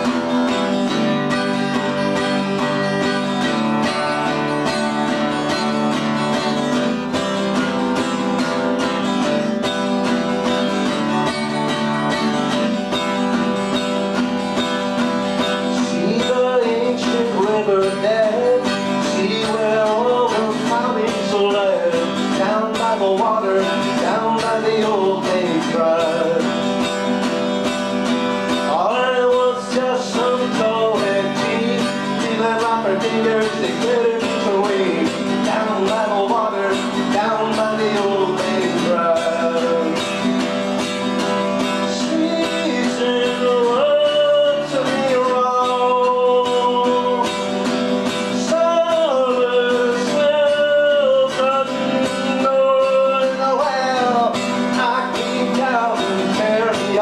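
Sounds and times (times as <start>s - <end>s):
acoustic guitar strumming: 0.0s - 57.0s
man singing: 0.0s - 57.0s.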